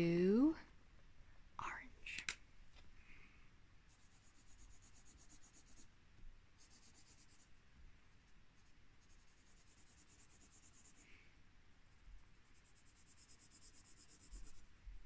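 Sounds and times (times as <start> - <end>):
marker scratching on paper: 3.9 - 5.8, 6.6 - 7.5, 8.6 - 11.0, 12.5 - 14.7.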